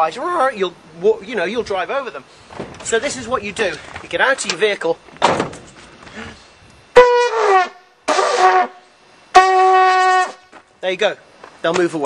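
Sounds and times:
bulb horn honks: 7.0s - 10.5s.

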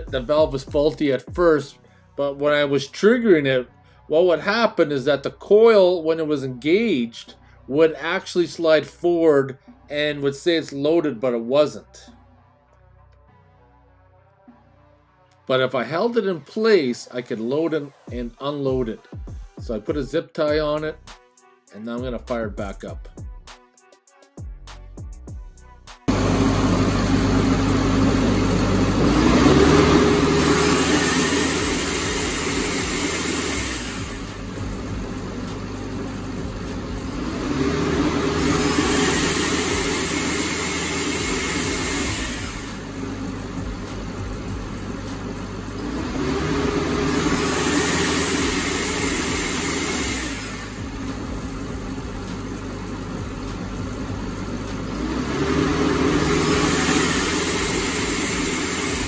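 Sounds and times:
compressor hiss: 26.1s - 46.4s, 47.0s - 54.9s, 55.8s - 59.0s
air compressor engine running: 26.1s - 59.0s.

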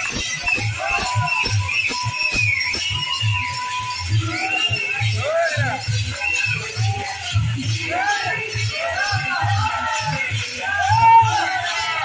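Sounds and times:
drum beating steady rhythm: 0.0s - 12.0s
jingling metal percussion: 0.0s - 12.0s.

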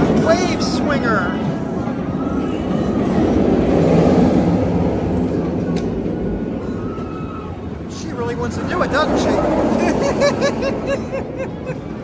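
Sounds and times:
roller coaster train rumbling: 0.0s - 12.0s.

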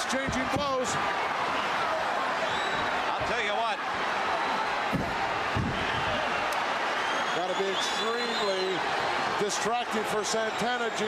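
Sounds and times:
arena crowd roaring: 0.0s - 11.0s.

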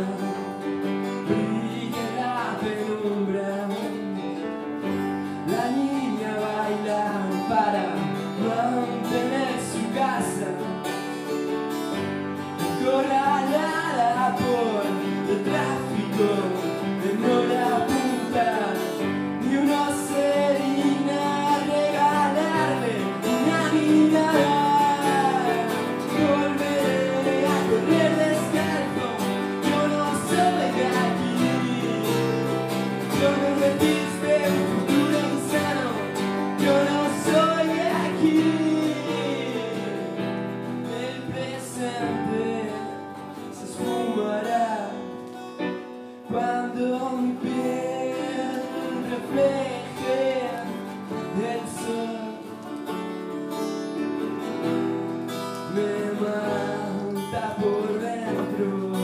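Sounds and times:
person singing: 0.0s - 11.6s, 12.5s - 54.1s, 54.7s - 59.0s
acoustic guitar: 0.0s - 59.0s
keyboard playing: 0.0s - 59.0s.

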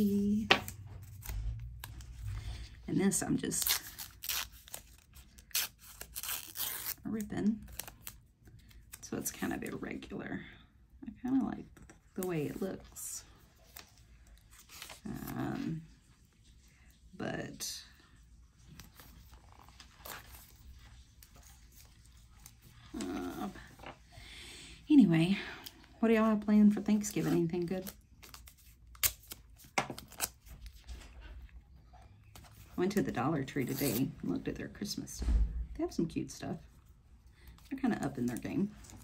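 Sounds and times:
tape tearing: 3.5s - 7.1s, 28.2s - 30.7s
faint paper rustling: 11.7s - 24.2s, 25.6s - 35.0s.

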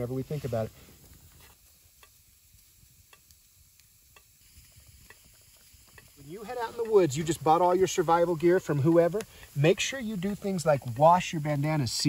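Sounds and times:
campfire coals crackling: 0.0s - 12.0s.

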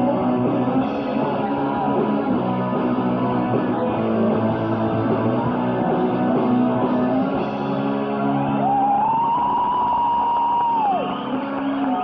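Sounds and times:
rock band held high note: 0.0s - 12.0s.

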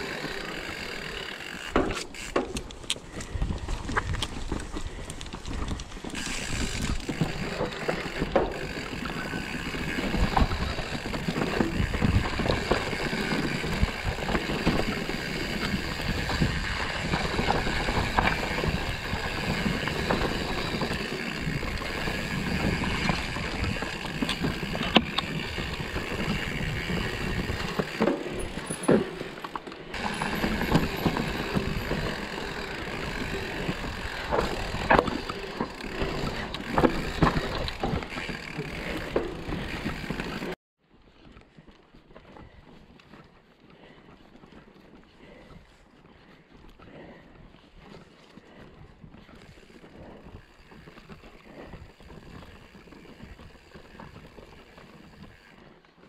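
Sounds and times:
bike rattling over bumps: 0.0s - 40.6s, 42.3s - 55.9s
bike tyres rolling on dirt: 0.0s - 56.0s.

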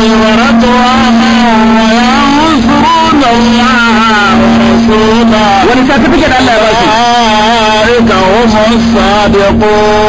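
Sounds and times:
man chanting recitation: 0.0s - 10.0s
steady hum: 0.0s - 10.0s.

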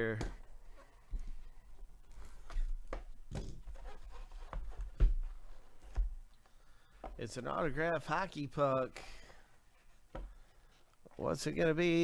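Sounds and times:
handling bumps: 2.4s - 6.3s.

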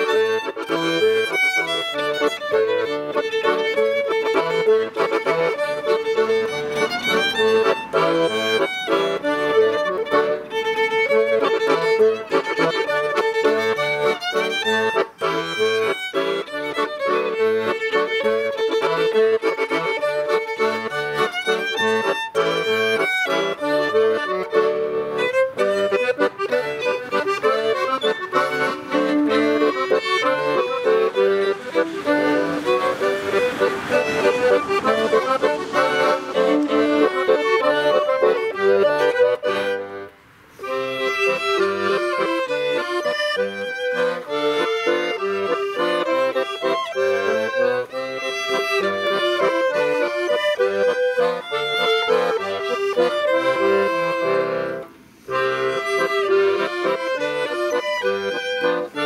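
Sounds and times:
accordion: 0.0s - 59.0s
violin: 0.0s - 59.0s.

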